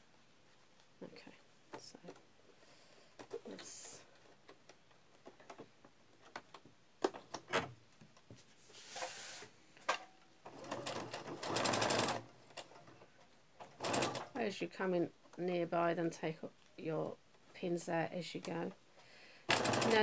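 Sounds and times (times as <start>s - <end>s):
sewing machine stitching: 10.5s - 12.2s, 13.6s - 14.4s, 19.5s - 20.0s.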